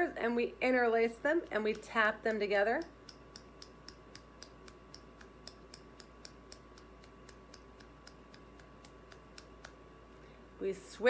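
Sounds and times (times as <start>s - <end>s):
fingers tapping together: 1.4s - 9.8s.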